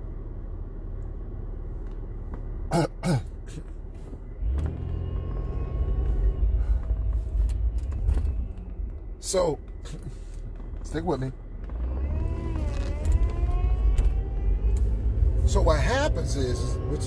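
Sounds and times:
car engine rumble and road noise: 0.0 - 17.0
person coughing: 2.7 - 3.7.

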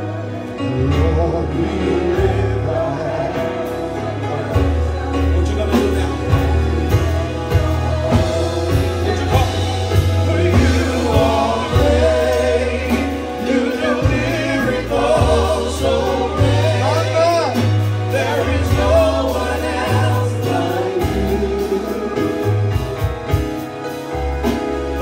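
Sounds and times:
keyboard with bass notes: 0.0 - 25.0
women singing gospel: 0.0 - 25.0
drum kit beat: 1.6 - 25.0.

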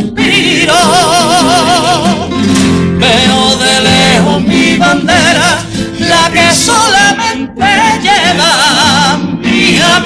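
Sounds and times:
spanish guitar accompaniment: 0.0 - 10.0.

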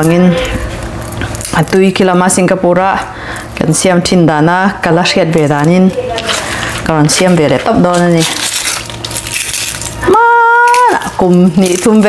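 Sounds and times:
garlic skins crackling: 0.0 - 2.5, 5.3 - 12.0.

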